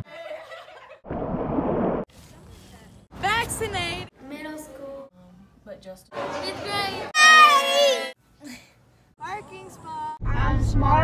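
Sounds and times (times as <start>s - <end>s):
group shouting and cheering: 7.1s - 8.2s.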